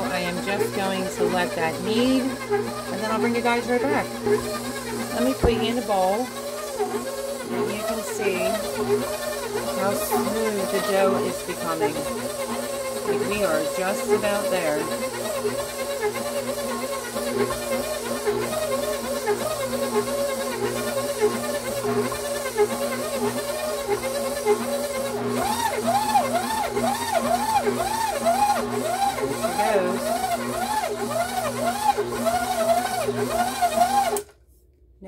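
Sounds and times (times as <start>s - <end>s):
stand mixer kneading dough: 0.0s - 34.3s.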